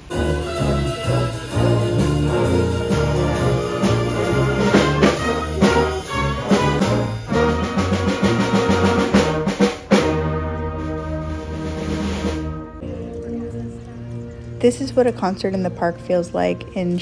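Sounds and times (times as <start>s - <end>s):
sharp percussion accents: 0.0s - 12.9s
concert band playing: 0.0s - 17.0s.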